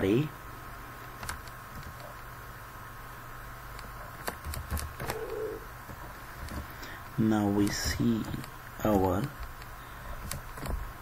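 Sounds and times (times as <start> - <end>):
steady electrical hum: 0.0 - 11.0
computer keyboard keystrokes: 3.8 - 5.4, 8.4 - 10.8.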